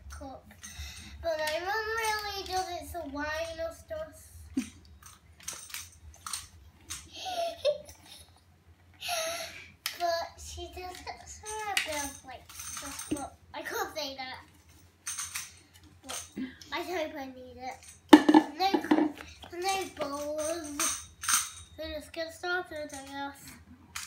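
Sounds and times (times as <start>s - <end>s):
plastic jug clicks and clinks: 18.2s - 19.3s.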